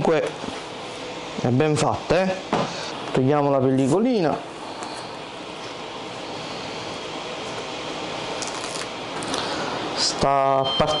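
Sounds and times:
plastic film peeling crackle: 8.4s - 9.4s.

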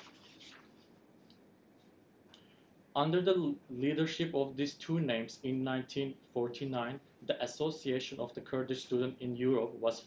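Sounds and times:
paper sheets rustling: 0.0s - 1.0s.

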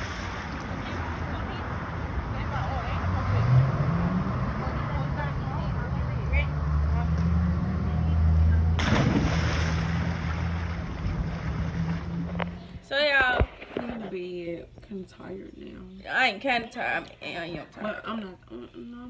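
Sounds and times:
pool water sloshing: 0.0s - 2.7s, 8.8s - 14.4s
steady low hum: 7.0s - 19.0s
person jumping into pool splash: 8.8s - 12.4s.

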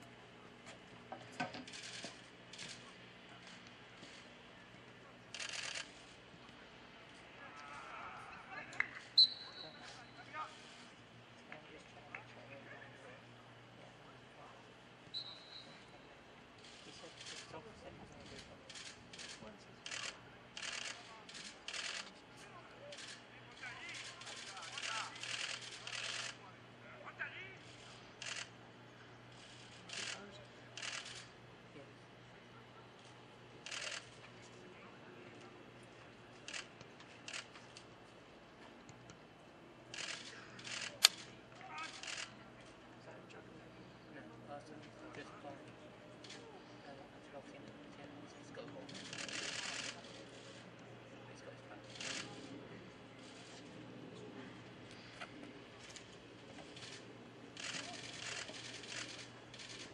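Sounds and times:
distant voices: 0.0s - 59.9s.

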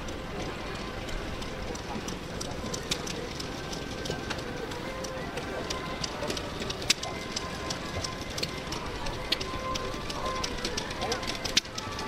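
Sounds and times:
faint music: 0.0s - 12.0s
murmur of people talking: 0.0s - 12.0s
sharp clicks and knocks: 0.0s - 12.0s.

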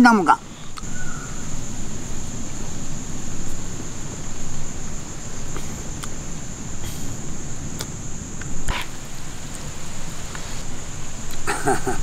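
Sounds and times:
insects droning: 0.0s - 12.0s
low rumbling noise: 0.0s - 12.0s.

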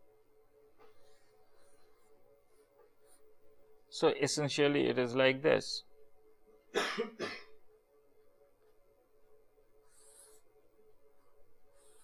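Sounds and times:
man coughing: 6.7s - 7.6s.

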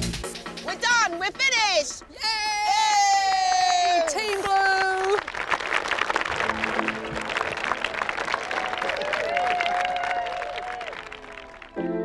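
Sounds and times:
people cheering: 2.6s - 12.0s
crowd clapping: 3.2s - 12.0s.

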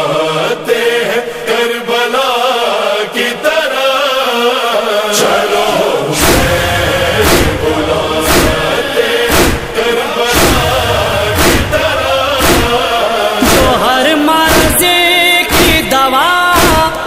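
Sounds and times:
choral backing: 0.0s - 17.0s
man chanting a lament: 0.0s - 17.0s
chest-beating thumps: 6.2s - 14.9s, 15.5s - 15.9s.

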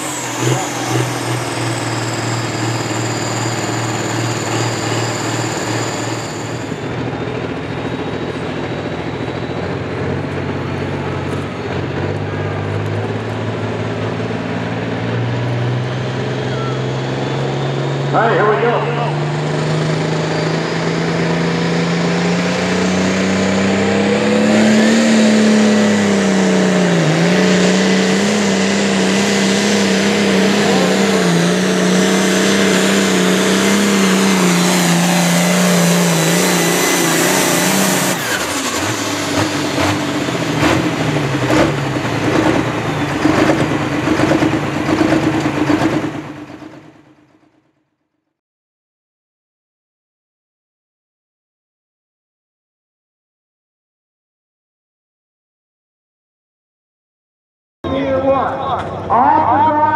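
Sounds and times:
tractor diesel engine at full throttle: 0.0s - 47.5s, 57.9s - 59.9s
engine knocks: 36.1s - 47.6s.

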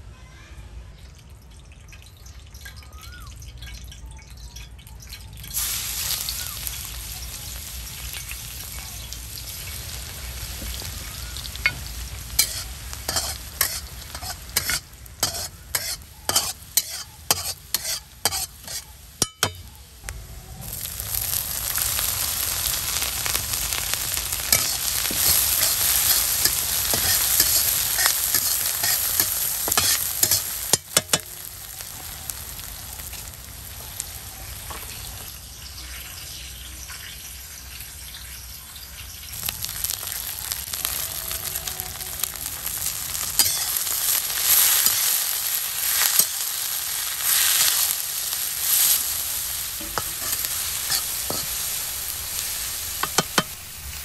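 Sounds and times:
oil sizzling in a pan: 5.4s - 54.0s
spatula scraping a pan: 12.4s - 19.6s, 24.5s - 31.3s, 43.3s - 45.2s, 45.8s - 46.5s, 48.5s - 53.7s.

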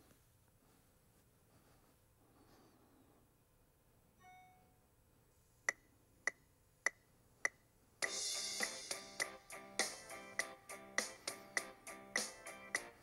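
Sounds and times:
soft chime: 4.2s - 4.8s
cymbal crash: 8.0s - 9.3s
electronic drum groove: 8.0s - 13.0s
pitched backing track: 8.0s - 13.0s.

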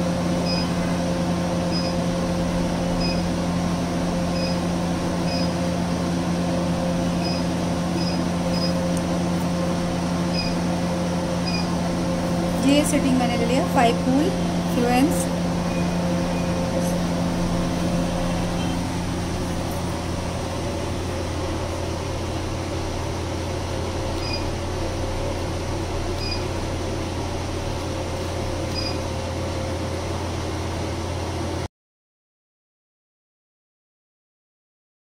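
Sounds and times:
machine cooling hum with hiss: 0.0s - 31.7s.

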